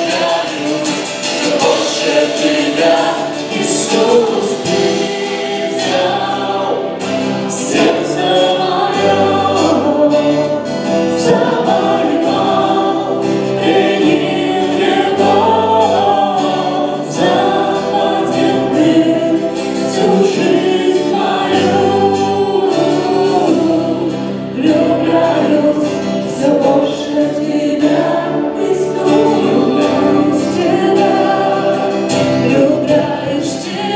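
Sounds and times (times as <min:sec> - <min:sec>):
acoustic guitar: 0:00.0 - 0:33.9
drums: 0:00.0 - 0:33.9
keyboard: 0:00.0 - 0:33.9
man and woman singing: 0:00.0 - 0:33.9.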